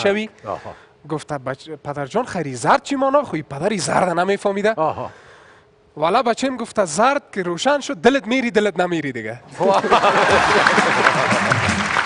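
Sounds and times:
audience laughter: 9.5s - 12.0s
audience applauding: 9.7s - 12.0s.

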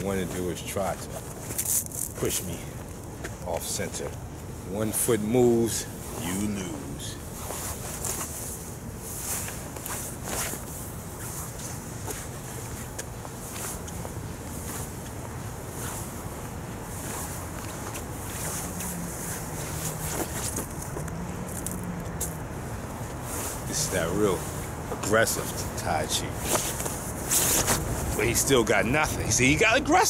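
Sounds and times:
jacket fabric rustling: 0.0s - 29.7s
low outdoor rumble: 0.0s - 30.0s.

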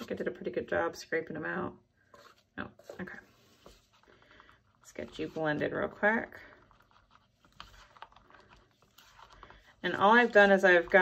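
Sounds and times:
spatula stirring in cup: 2.1s - 11.0s.

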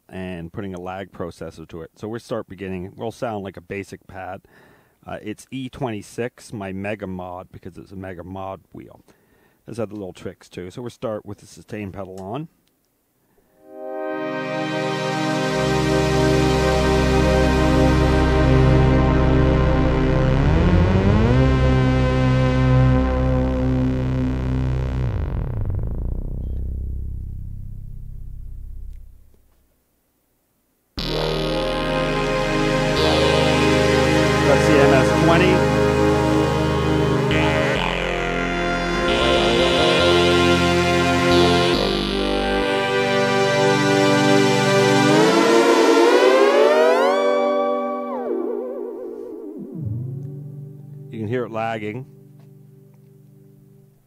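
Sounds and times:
synthesizer pad chord: 13.6s - 26.5s, 31.0s - 54.0s.

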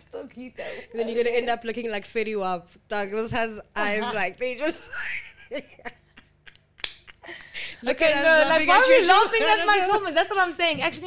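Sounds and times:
person speaking: 3.7s - 4.7s.

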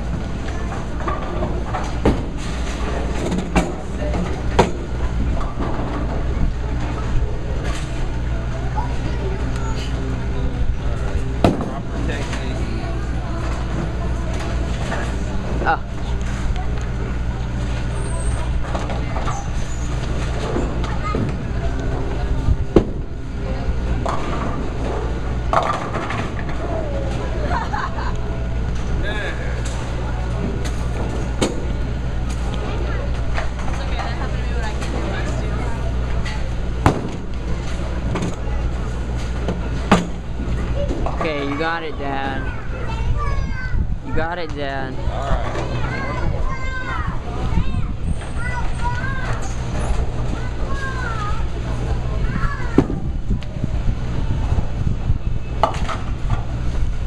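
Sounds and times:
background chatter: 0.0s - 57.0s.

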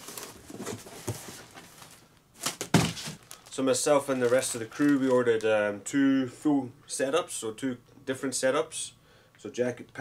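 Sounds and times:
cardboard box hitting floor: 2.4s - 3.3s.

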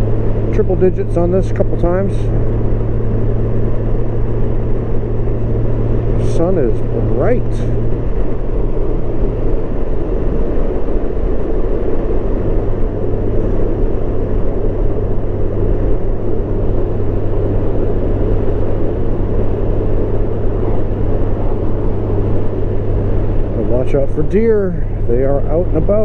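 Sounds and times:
motorcycle engine humming: 0.0s - 26.0s
road noise: 0.0s - 26.0s
wind noise: 0.0s - 26.0s.

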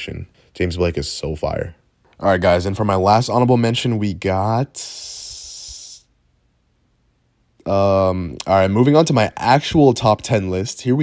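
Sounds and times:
person hissing through teeth: 4.8s - 6.1s.

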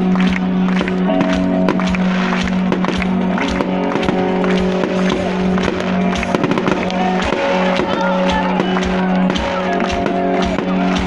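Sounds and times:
loud music with held notes: 0.0s - 11.0s
fireworks bursting and crackling: 0.1s - 11.0s.

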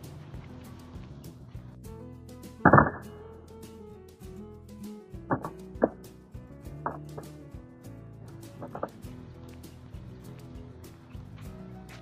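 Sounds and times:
background music sustained notes: 0.0s - 12.0s
sharp plucked hits: 2.4s - 3.4s, 4.3s - 7.7s, 8.3s - 9.6s.

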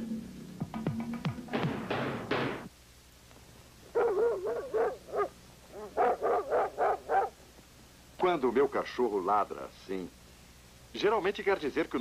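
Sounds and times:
dog barking: 3.9s - 7.4s.

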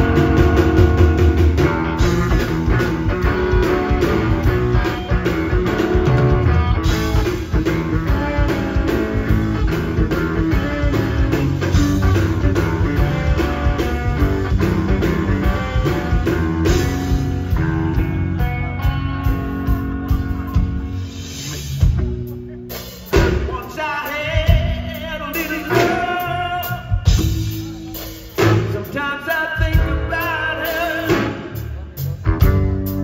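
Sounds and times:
drum kit: 0.0s - 33.0s
electric guitar: 0.0s - 33.0s.

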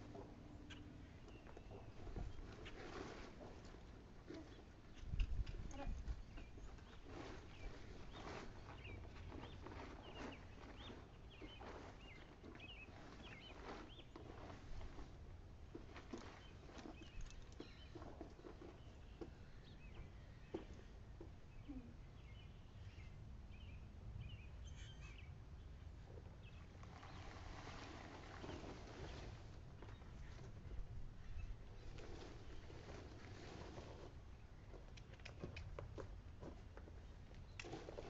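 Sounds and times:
plastic tarp rustling: 7.0s - 15.3s, 26.8s - 29.8s, 31.8s - 34.1s
faint bird chirps: 24.3s - 25.3s.

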